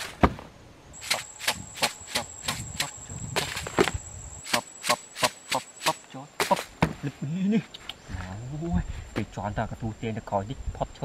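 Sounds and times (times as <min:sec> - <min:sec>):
high-pitched insect whine: 0:00.9 - 0:06.7.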